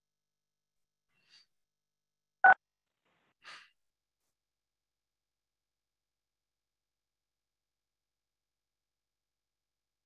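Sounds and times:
soft breathy puff: 0:03.4 - 0:03.7.

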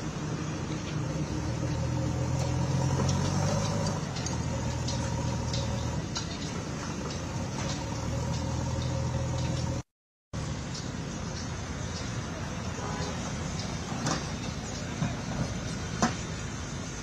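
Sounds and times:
engine idling: 0:00.0 - 0:17.0.

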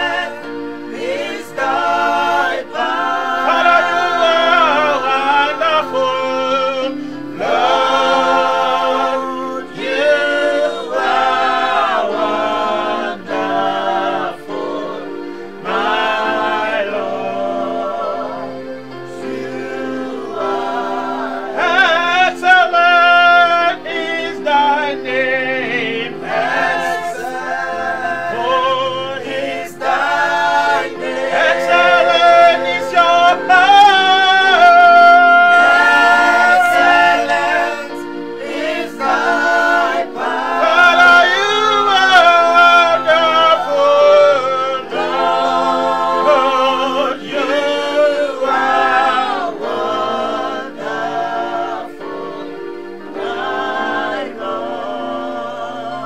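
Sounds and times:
gospel group singing: 0:00.0 - 0:56.0
man singing lead: 0:01.2 - 0:10.7, 0:31.4 - 0:45.3.

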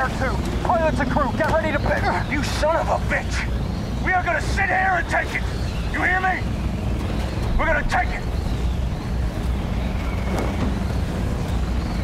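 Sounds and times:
aircraft engines droning: 0:00.0 - 0:12.0
rushing wind: 0:00.0 - 0:12.0.

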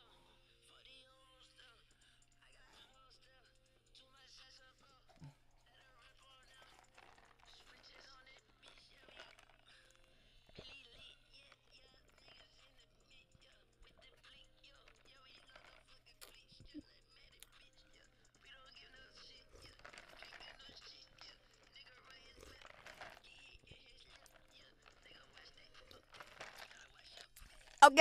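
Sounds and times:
quiet music: 0:00.0 - 0:28.0.

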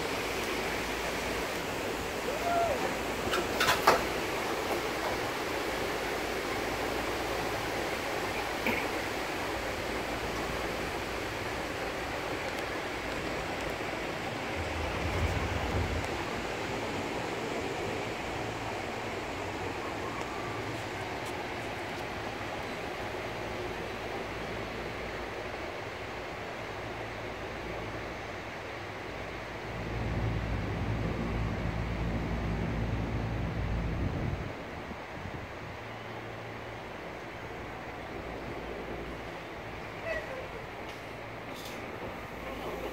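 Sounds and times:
wind rushing: 0:13.0 - 0:18.5
low rumble: 0:13.7 - 0:17.2.

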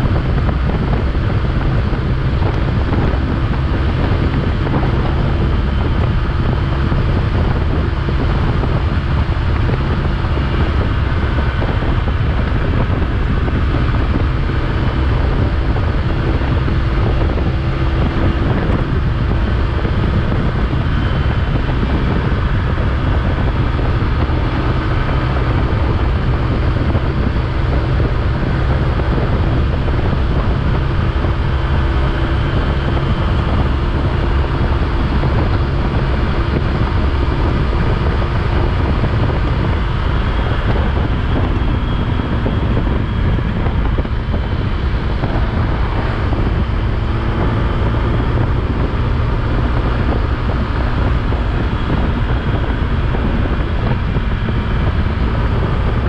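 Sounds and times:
motorcycle riding on wet road: 0:00.0 - 0:56.0
wind rush on microphone: 0:00.0 - 0:56.0.

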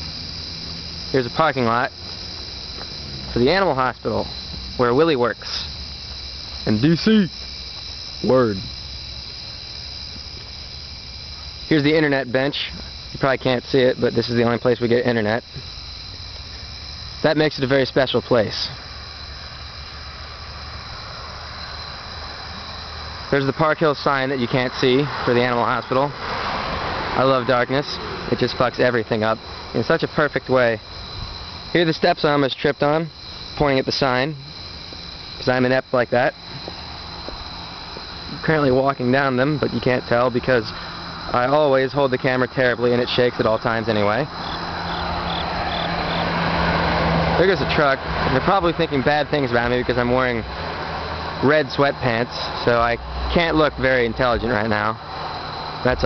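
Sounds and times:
crickets chirping: 0:00.0 - 0:56.0
distant road traffic: 0:00.0 - 0:56.0
truck passing: 0:00.0 - 0:56.0.

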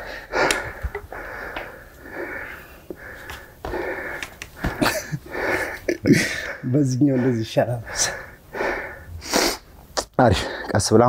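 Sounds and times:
man breathing hard: 0:00.0 - 0:09.7.

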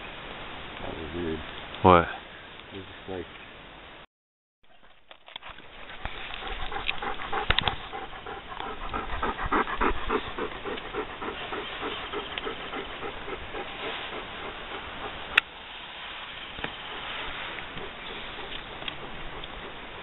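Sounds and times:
dog panting rapidly: 0:05.7 - 0:15.4, 0:16.8 - 0:20.0.

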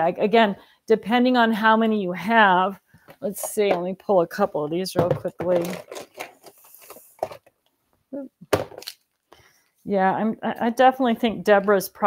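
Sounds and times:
craft supplies handled: 0:05.0 - 0:07.5.

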